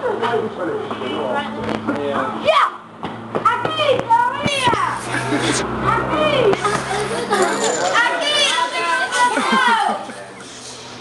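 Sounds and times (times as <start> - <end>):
children shouting and squealing: 3.5 - 10.5.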